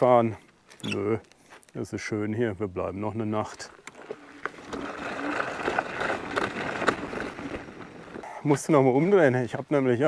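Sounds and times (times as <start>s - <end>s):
scooter tyres crunching on gravel: 3.2s - 9.9s.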